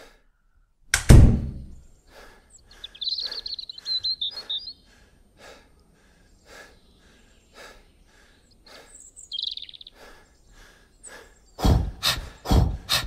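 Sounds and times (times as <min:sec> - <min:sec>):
birds chirping: 0:00.0 - 0:00.8, 0:01.4 - 0:13.0
heavy thump: 0:01.0 - 0:01.8.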